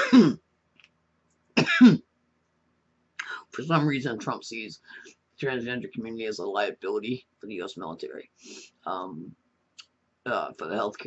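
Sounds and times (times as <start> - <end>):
person coughing: 0.0 - 0.4, 1.6 - 2.0.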